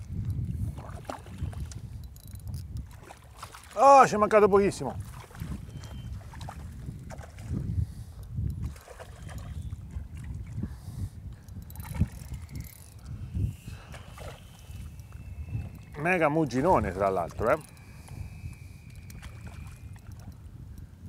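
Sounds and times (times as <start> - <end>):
wind rumble on microphone: 0.0 - 21.0
fish splashing in water: 17.3 - 20.3.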